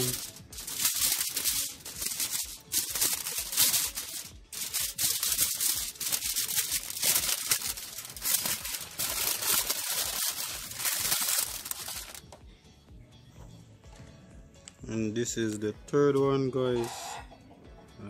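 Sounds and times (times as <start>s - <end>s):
aluminium foil crinkling: 0.0s - 12.3s.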